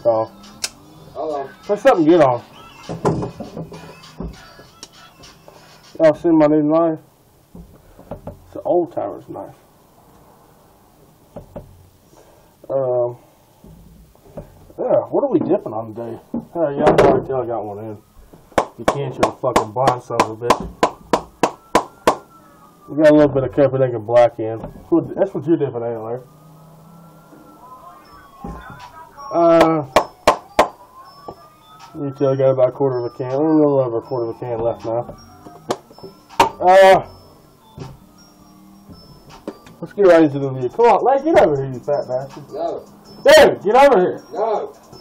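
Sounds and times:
low room hiss: 0:00.0 - 0:45.0.

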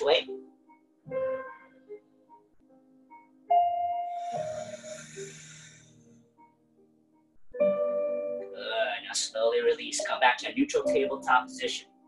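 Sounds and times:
deep breathy exhale: 0:04.1 - 0:06.1.

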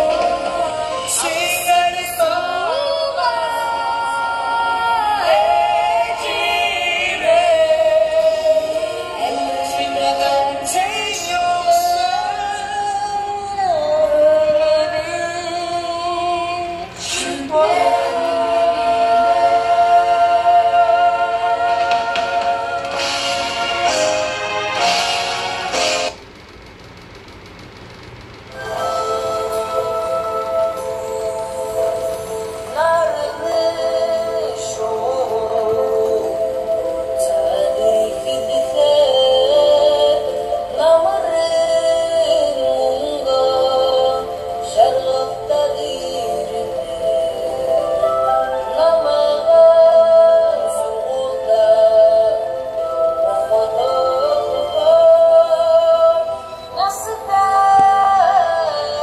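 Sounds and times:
music: 0:00.0 - 0:26.3, 0:28.5 - 0:59.0
low rumbling background noise: 0:00.0 - 0:59.0.

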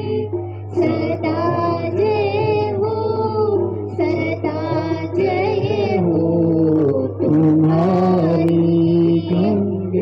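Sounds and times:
high voice singing devotional song: 0:00.0 - 0:10.0
musical accompaniment: 0:00.0 - 0:10.0
steady low hum: 0:00.0 - 0:10.0.

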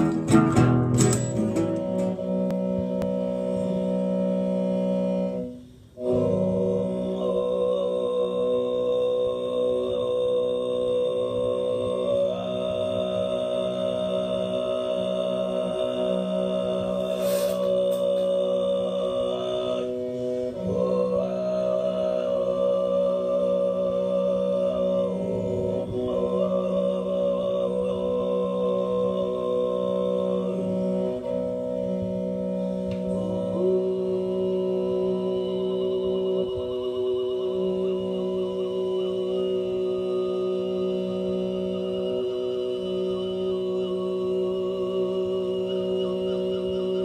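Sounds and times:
man throat singing drone: 0:00.0 - 0:47.0.

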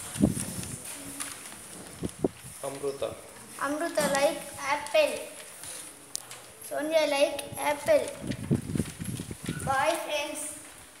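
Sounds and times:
child speaking: 0:03.6 - 0:05.4, 0:06.6 - 0:08.3, 0:09.6 - 0:10.7.

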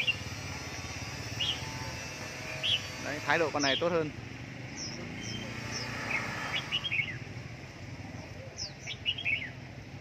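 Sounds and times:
birds sliding chirps: 0:00.0 - 0:07.4.

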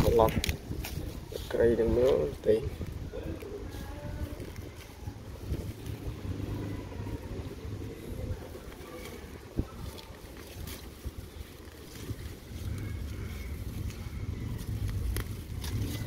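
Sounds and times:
hands digging in dry soil: 0:00.0 - 0:16.0
wind buffeting microphone: 0:00.0 - 0:16.0.

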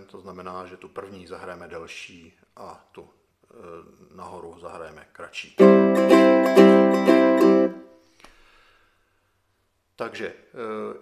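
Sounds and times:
ukulele strummed chord: 0:05.6 - 0:07.9.

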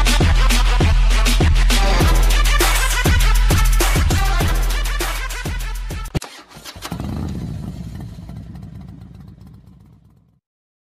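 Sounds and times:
motorcycle engine running: 0:06.6 - 0:10.4.

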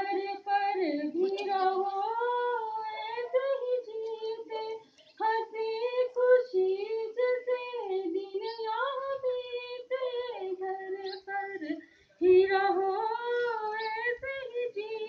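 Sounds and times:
woman singing into microphone: 0:00.0 - 0:15.0.

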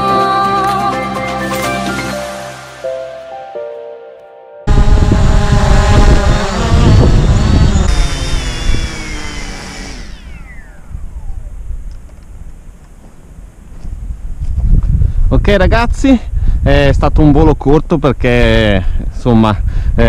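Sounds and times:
drone motors whining down: 0:04.7 - 0:12.3
wind rumbling on microphone: 0:04.7 - 0:20.0.

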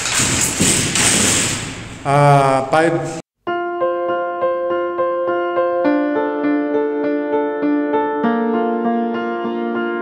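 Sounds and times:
bed frame knocking: 0:00.0 - 0:02.0.

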